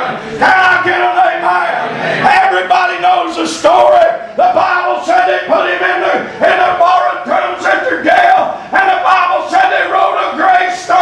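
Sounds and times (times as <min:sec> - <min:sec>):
man preaching in chanted shout: 0:00.0 - 0:11.0.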